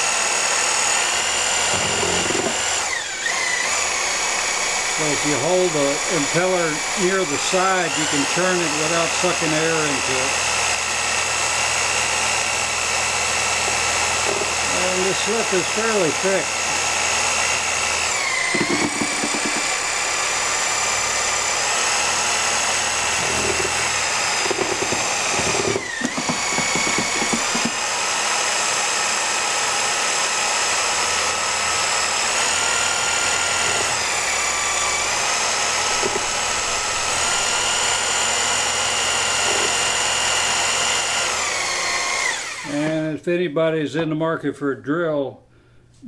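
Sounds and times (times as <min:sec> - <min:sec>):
drill motor whine mixing clay: 0:00.0 - 0:43.0.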